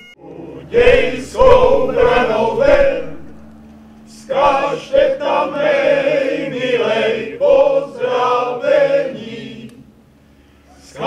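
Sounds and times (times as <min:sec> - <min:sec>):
men's choir singing unaccompanied: 0:00.1 - 0:10.0, 0:10.7 - 0:11.0.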